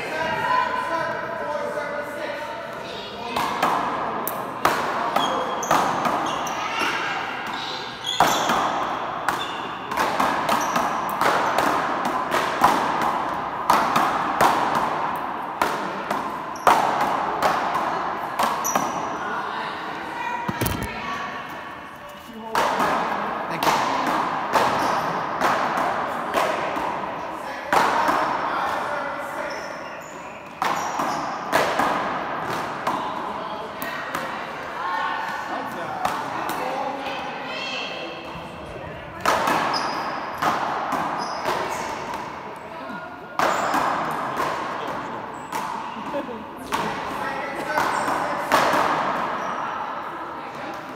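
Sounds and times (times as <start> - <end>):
paddles hitting ball: 3.4 - 19.0, 46.6 - 49.4.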